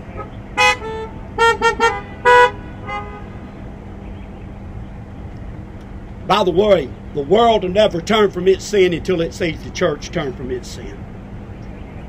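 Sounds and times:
car horns honking: 0.0 - 3.7.

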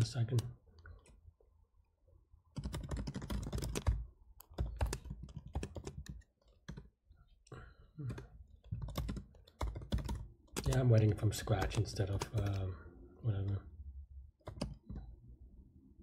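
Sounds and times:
keyboard typing: 2.5 - 7.0, 8.0 - 12.6, 14.4 - 15.2.

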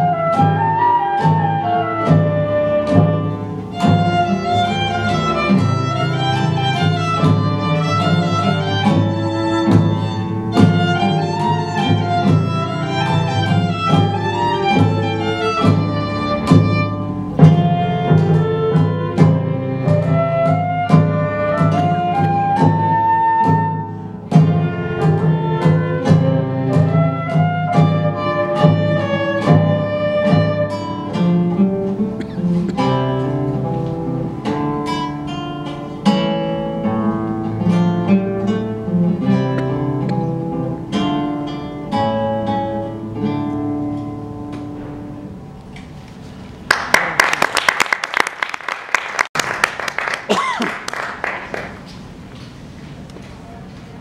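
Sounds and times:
violin and flute melody: 0.0 - 31.1
drum strokes: 0.2 - 34.8.

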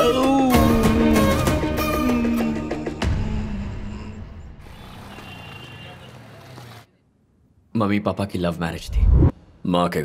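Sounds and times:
vehicles passing: 4.6 - 7.0.

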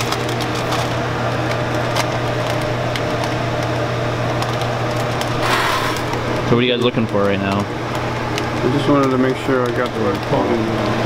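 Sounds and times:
machine humming: 0.0 - 11.0
conveyor rattling ticks: 8.6 - 10.9.

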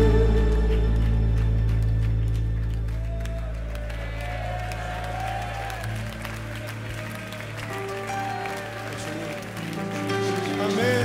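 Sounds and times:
congregation applauding: 0.0 - 11.0.

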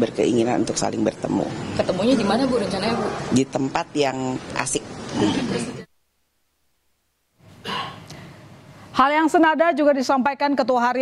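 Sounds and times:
crowded room background noise: 0.0 - 5.9
breathy gasp: 7.6 - 8.4.

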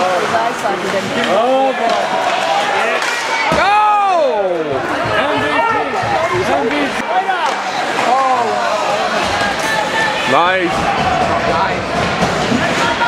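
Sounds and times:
spectators shouting: 1.5 - 13.0.

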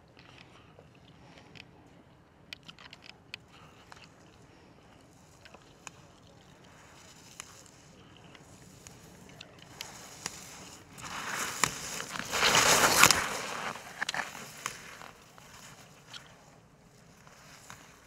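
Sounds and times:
skis scraping on snow: 6.7 - 18.0.

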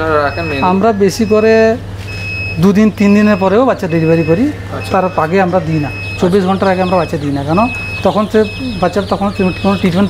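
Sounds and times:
man speaking: 0.0 - 1.9, 2.5 - 10.0
steady low hum: 0.0 - 10.0.

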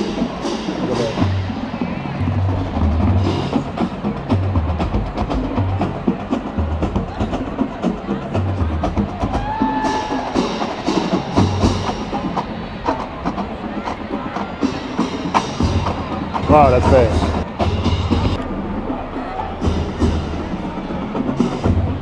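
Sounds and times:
bass drum beats: 0.0 - 22.0
crowd noise: 0.0 - 22.0.

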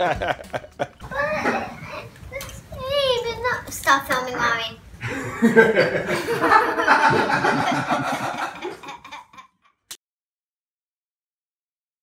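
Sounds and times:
giggling and laughter: 0.0 - 1.0, 5.0 - 9.7.

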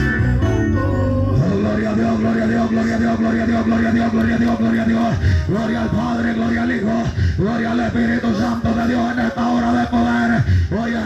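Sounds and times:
amplified voice holding low note: 0.0 - 11.0.

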